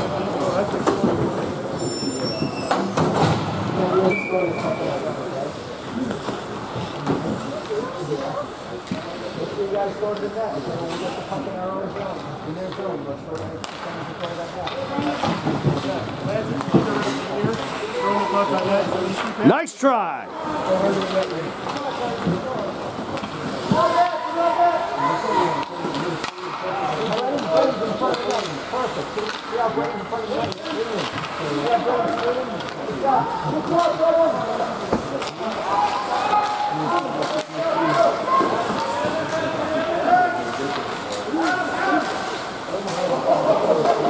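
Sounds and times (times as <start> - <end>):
indistinct crowd voices: 0.0 - 44.0.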